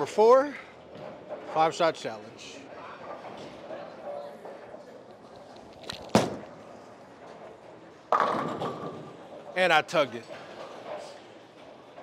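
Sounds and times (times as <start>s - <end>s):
bowling ball thud on lane: 8.1s - 9.1s
bowling pins crashing: 8.1s - 9.3s.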